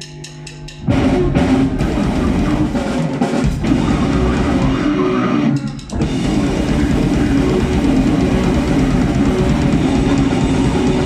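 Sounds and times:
live rock band playing: 0.6s - 11.0s.

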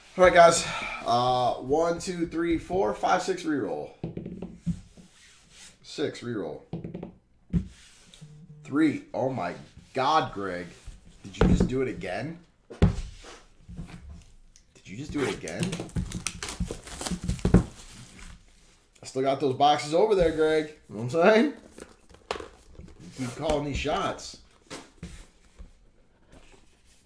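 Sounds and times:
hands rubbing shrink-wrapped boxes: 15.1s - 18.9s.

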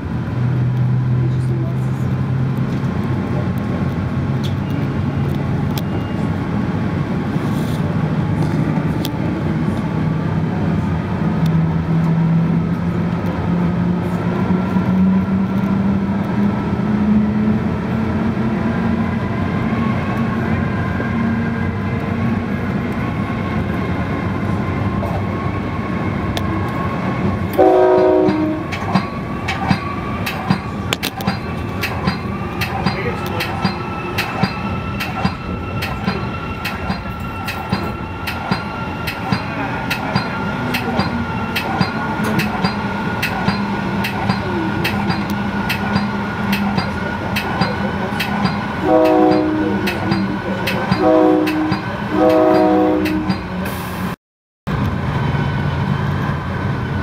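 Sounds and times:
train rumble: 0.0s - 57.0s
train horn blast: 27.6s - 28.7s, 48.8s - 49.9s, 51.0s - 53.5s
wheels clicking over rail joints: 27.9s - 53.6s.

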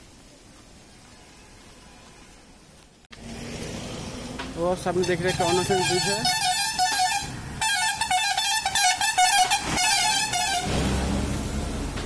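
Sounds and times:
vehicle passing rumble: 3.1s - 12.0s
vehicle horn: 5.0s - 11.1s.

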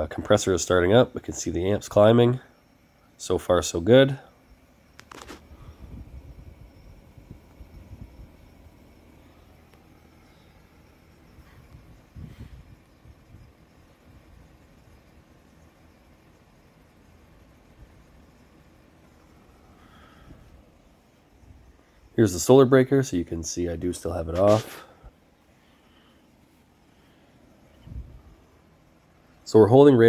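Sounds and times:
fan turning: 0.0s - 30.0s
heat pump outdoor unit humming: 0.0s - 30.0s.

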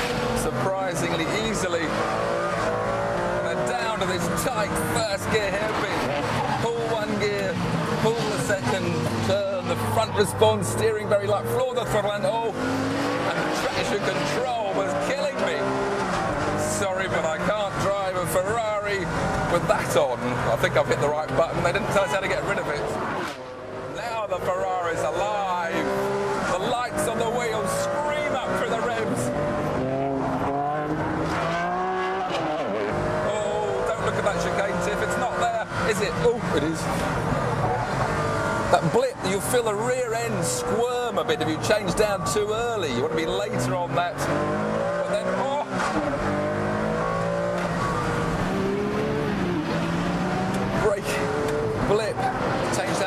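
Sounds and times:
car engine at full throttle: 0.0s - 53.0s.

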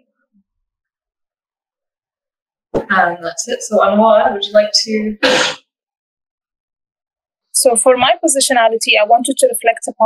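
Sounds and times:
woman speaking: 2.8s - 5.3s, 7.6s - 10.0s.

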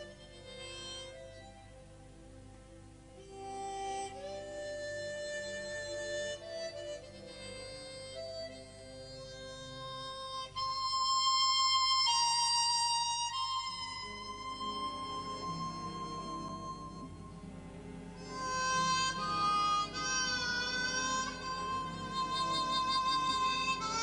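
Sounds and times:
harmonica melody: 0.0s - 24.0s
orchestral accompaniment: 13.3s - 24.0s.

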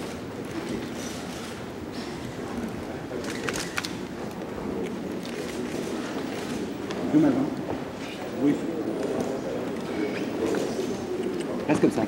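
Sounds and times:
murmur of people talking: 0.0s - 12.0s.

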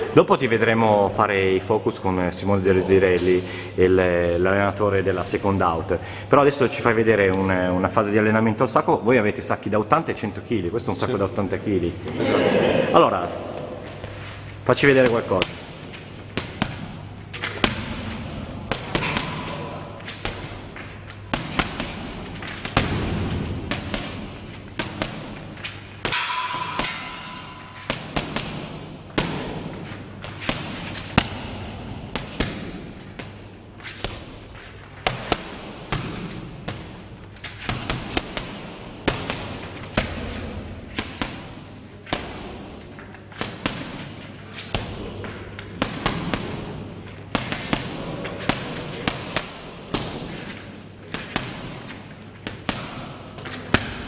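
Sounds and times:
boxing gloves punching heavy bag: 15.0s - 54.0s.

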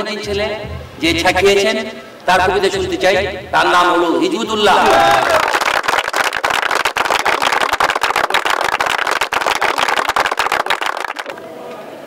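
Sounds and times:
large audience applauding: 4.7s - 11.5s.

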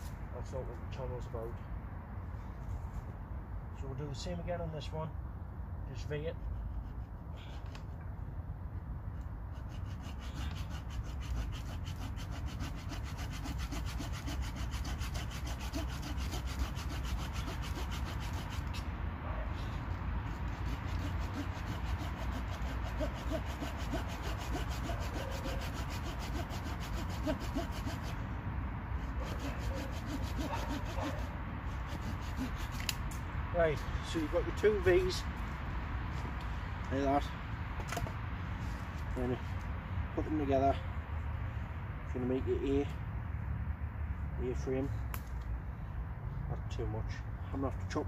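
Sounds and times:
hand saw cutting wood: 6.2s - 8.0s, 9.2s - 18.9s, 20.2s - 28.2s, 29.0s - 33.0s.

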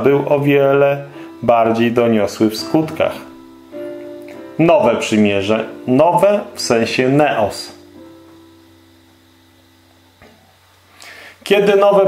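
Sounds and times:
plucked guitar notes: 0.0s - 10.6s
low steady hum: 0.0s - 12.0s.

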